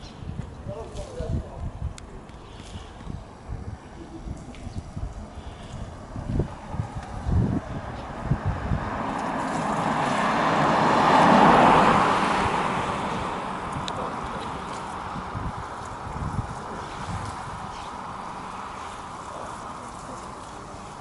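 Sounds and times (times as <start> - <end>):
wind rumbling on microphone: 0.0 - 21.0
car driving past: 5.3 - 21.0.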